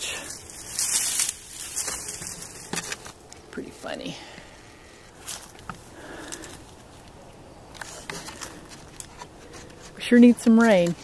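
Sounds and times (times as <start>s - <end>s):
dry grass rustling and crackling: 0.0s - 11.0s
twigs snapping: 0.4s - 3.5s.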